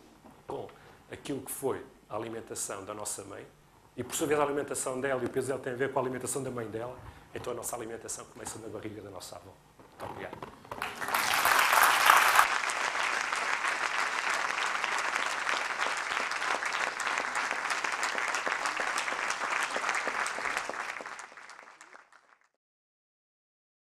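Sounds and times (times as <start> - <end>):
audience applauding: 10.8 - 22.6.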